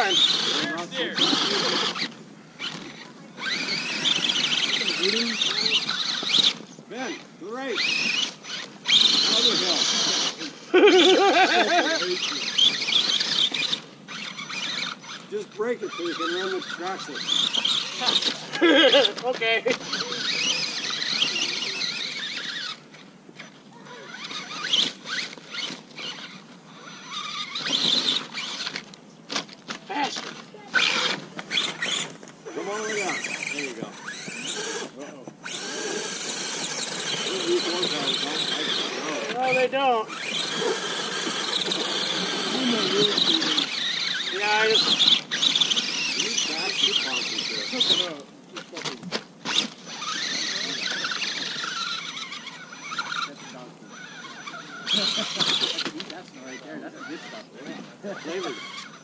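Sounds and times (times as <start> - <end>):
electric motor whining: 0.0 - 59.0
indistinct voices: 29.8 - 49.1.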